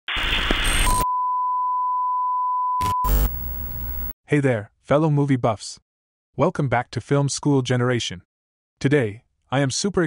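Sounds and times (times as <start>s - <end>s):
steady test tone beep: 0.9s - 4.1s.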